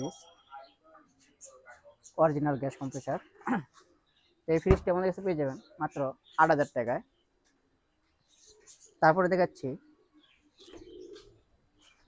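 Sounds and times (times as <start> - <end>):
bird cooing: 9.8 - 12.0.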